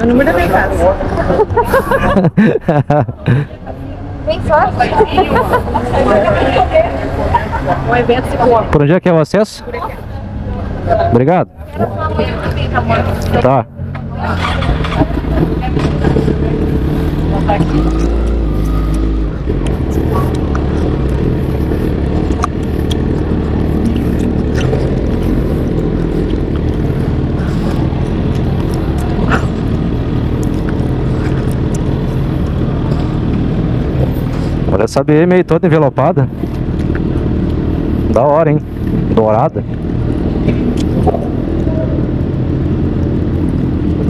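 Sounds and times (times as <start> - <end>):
motorcycle engine running: 9.9 - 44.0.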